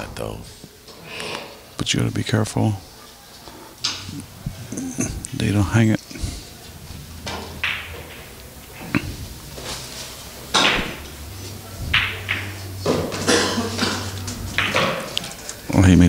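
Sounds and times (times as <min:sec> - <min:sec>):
steady low hum: 0:03.6 - 0:16.0
knocks and clicks of pool balls: 0:06.1 - 0:15.6.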